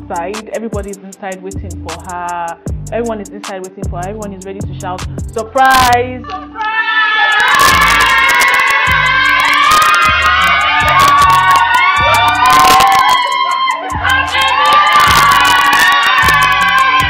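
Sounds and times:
music with pulsing bass beat: 0.0 - 6.2, 7.3 - 17.0
crowd shouting and cheering: 6.3 - 17.0
high-pitched screams and whoops: 6.3 - 17.0.

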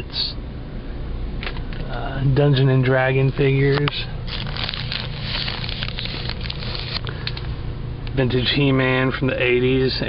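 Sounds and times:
steady low hum: 0.0 - 10.0
plastic bags crinkling: 3.8 - 7.4.

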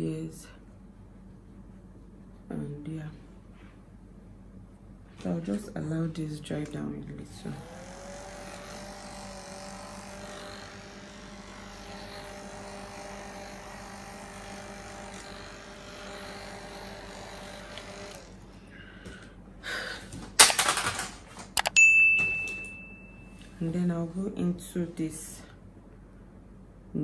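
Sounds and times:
handheld fan whirring: 5.2 - 21.8
short ringing ding: 21.8 - 23.4.

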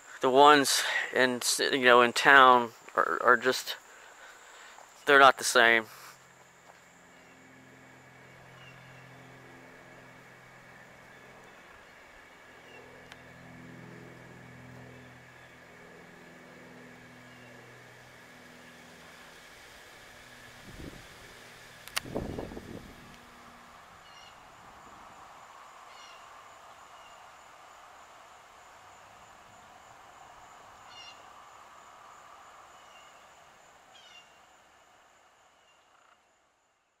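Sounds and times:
high insect drone: 0.0 - 37.0
low pitched calls: 19.9 - 27.3, 29.3 - 34.4.

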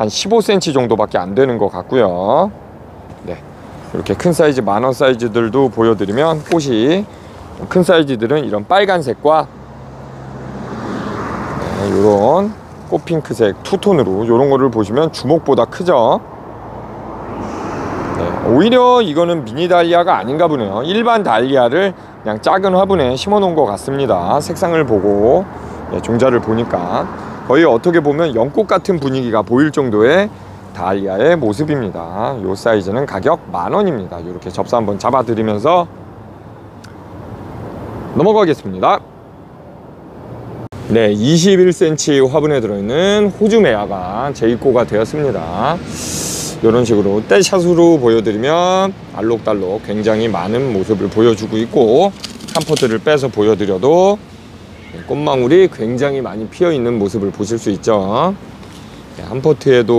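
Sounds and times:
vehicle rushing past: 9.4 - 14.1, 15.9 - 20.6, 22.1 - 31.0, 38.9 - 59.9.

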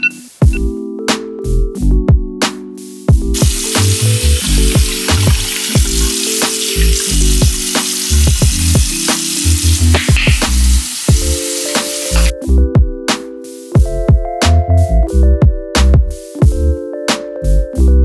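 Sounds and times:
music with beat and bass: 0.0 - 18.0
tap water running into sink: 3.4 - 12.3.

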